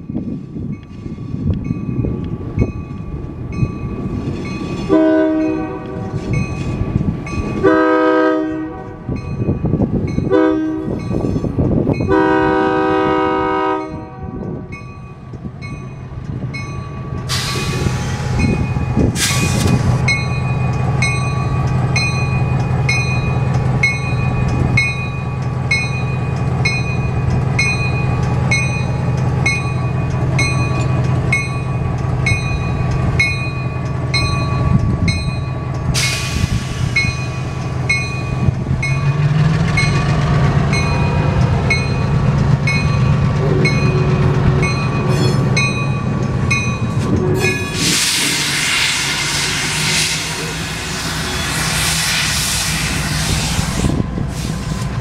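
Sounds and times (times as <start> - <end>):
diesel locomotive engine running: 0.1 - 55.0
locomotive air horn blasts: 4.9 - 6.2, 7.6 - 9.1, 10.3 - 11.0, 12.1 - 14.4
crossing signal bell ringing: 13.7 - 17.8, 20.0 - 35.9, 37.0 - 47.9.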